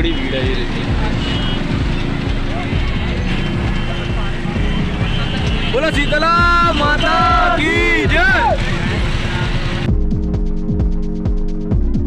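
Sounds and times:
crowd voices: 0.0 - 9.9
vehicle engines rumbling: 0.0 - 9.9.

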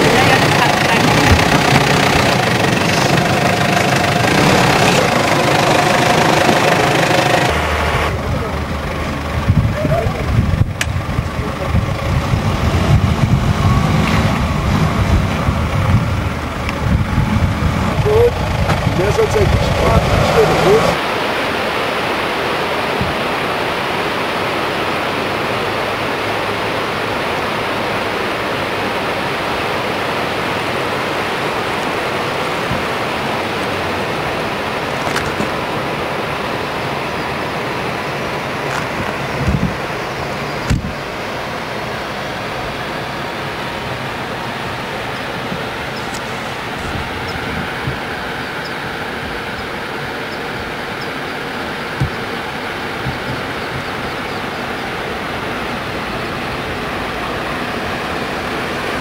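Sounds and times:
waterfall rushing: 0.0 - 59.0.

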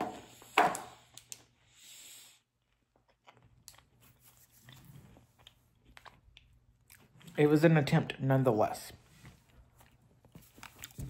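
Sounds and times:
person chewing: 2.4 - 7.4, 9.4 - 11.0.

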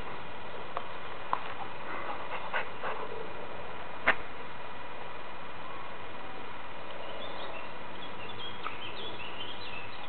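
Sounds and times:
background hiss: 0.0 - 10.0
dog panting: 1.5 - 3.3.

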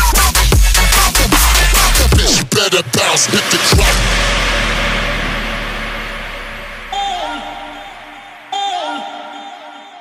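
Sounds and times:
bass hit: 1.2 - 8.5
synth sample bending downward: 3.6 - 8.6
held sub-bass note: 3.7 - 8.6.

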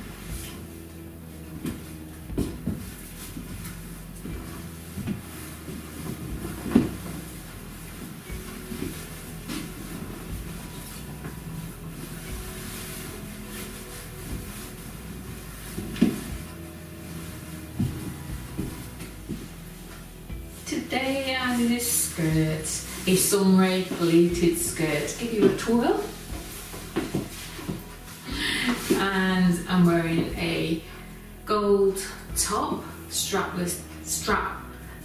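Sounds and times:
low steady hum: 0.0 - 35.0
footsteps on hard floor: 0.3 - 20.8, 21.5 - 29.2.

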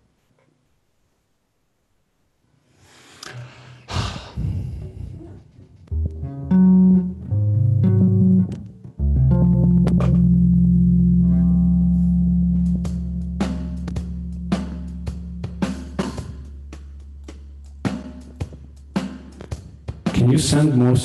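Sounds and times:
electric bass guitar notes: 3.9 - 18.8
knock and string noise: 9.7 - 10.3.

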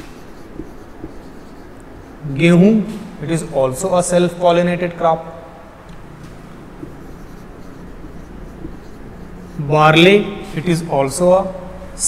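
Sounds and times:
marker pen scratching on whiteboard: 0.0 - 12.0.

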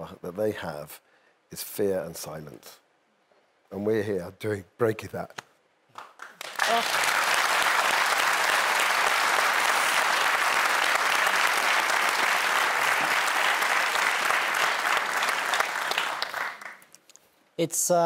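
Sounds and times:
audience applauding: 5.9 - 17.0.

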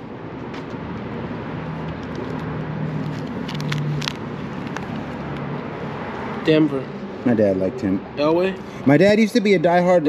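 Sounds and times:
outdoor background noise: 0.0 - 10.0
plastic sleeves clicking and rustling: 3.0 - 5.0.

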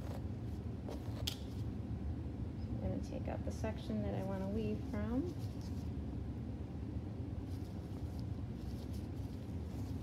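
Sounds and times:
low background hum: 0.0 - 10.0
comb and gloved hands rustling hair: 7.5 - 10.0.

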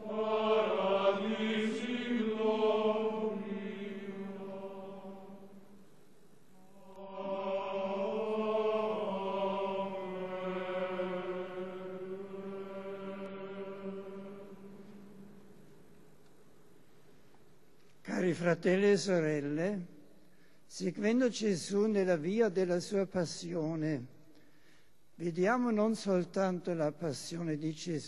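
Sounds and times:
male choir chanting: 0.0 - 5.7, 6.7 - 15.2.

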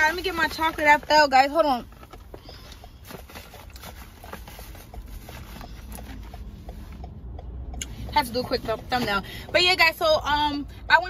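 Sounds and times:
small items tapping and rustling: 0.0 - 6.8
car cabin hum: 0.0 - 11.0.

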